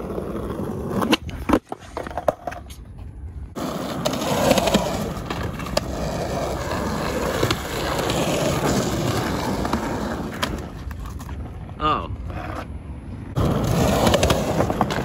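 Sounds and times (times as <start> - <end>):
skateboard wheels rolling on concrete: 0.0 - 15.0.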